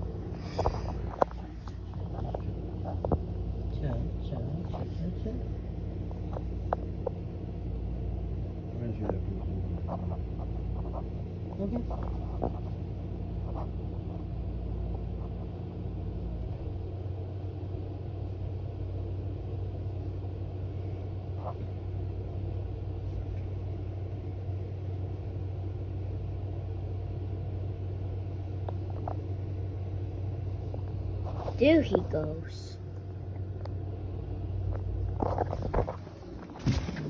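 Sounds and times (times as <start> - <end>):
van engine running: 0.0 - 37.0.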